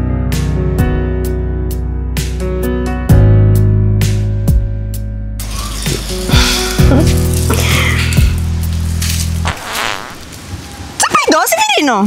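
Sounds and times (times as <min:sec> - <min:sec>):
background music: 0:00.0 - 0:09.6
fart sound effect: 0:09.4 - 0:10.3.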